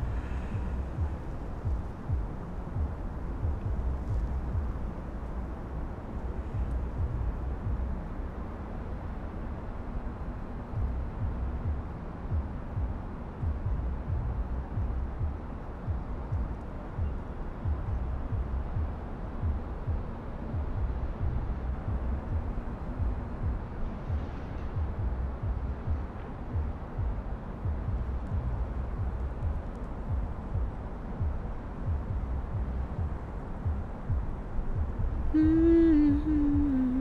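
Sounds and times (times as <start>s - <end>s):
low outdoor rumble: 0.0s - 37.0s.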